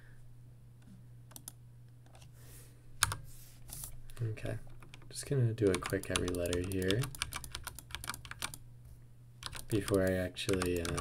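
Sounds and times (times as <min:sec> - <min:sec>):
keyboard keystrokes: 0:05.7 - 0:08.6, 0:09.4 - 0:11.0.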